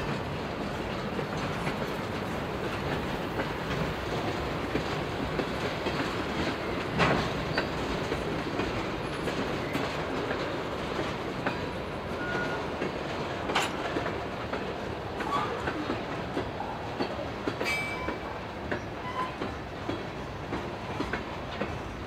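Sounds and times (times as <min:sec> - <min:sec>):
steel wheels rumbling on rails: 0:00.0 - 0:22.0.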